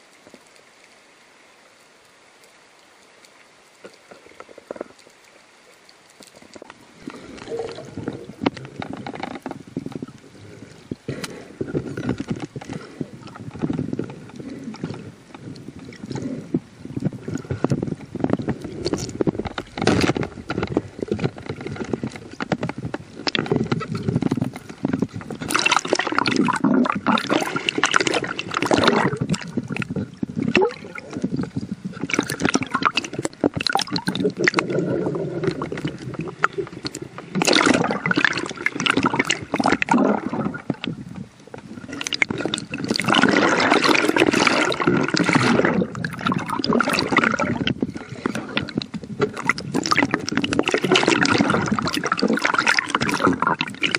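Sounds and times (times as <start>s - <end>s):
water sloshing and gurgling: 2.4s - 53.9s.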